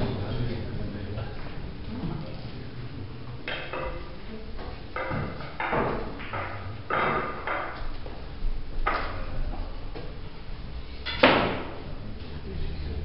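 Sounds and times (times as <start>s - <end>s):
low room noise: 0.0s - 13.0s
soft knocks: 5.0s - 8.2s.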